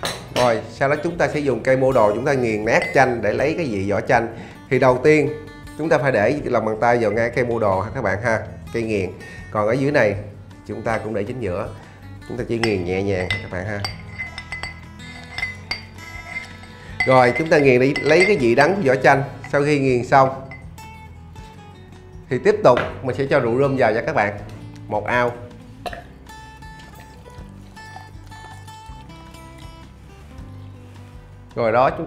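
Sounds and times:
background music: 0.0 - 32.0
muddler clinking in a glass: 2.7 - 3.2, 12.6 - 19.7, 20.3 - 20.8.

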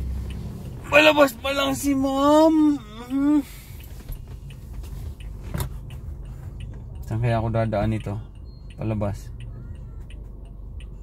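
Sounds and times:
car engine idling: 0.0 - 11.0
faint light ticks: 0.1 - 0.8, 3.0 - 11.0.

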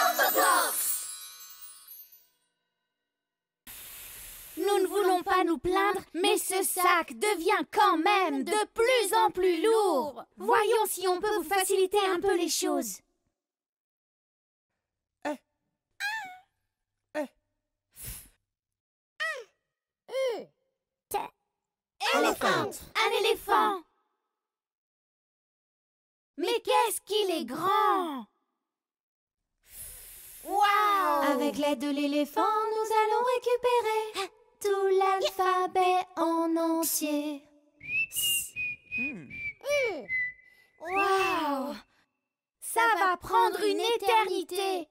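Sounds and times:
short hiss: 3.7 - 4.7, 29.7 - 30.5
high whistle tone: 37.8 - 41.7.

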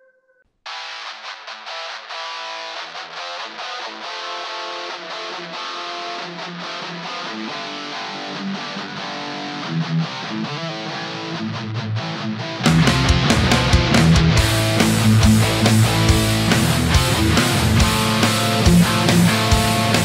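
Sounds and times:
distorted electric guitars riff: 0.7 - 20.0.

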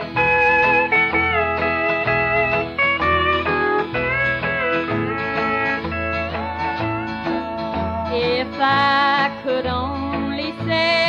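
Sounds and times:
bass and steady rhythm: 0.0 - 11.0
country guitar lead with bending notes: 0.0 - 11.0.

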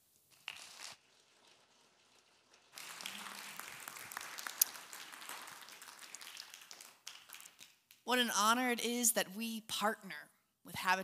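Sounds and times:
congregation applauding: 2.7 - 8.0.

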